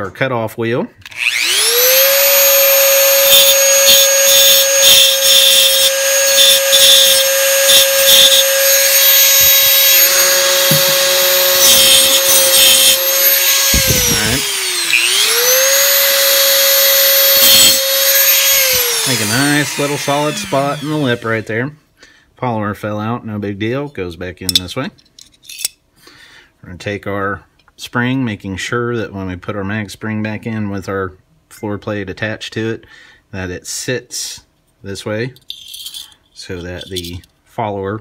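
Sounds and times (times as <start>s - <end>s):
rotary tool grinding metal: 1.1s - 21.5s, 35.4s - 37.2s.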